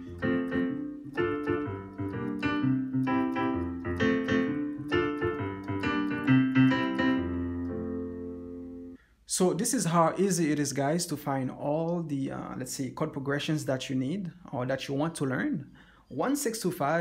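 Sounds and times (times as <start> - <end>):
digital piano playing chords: 0.0 - 9.0.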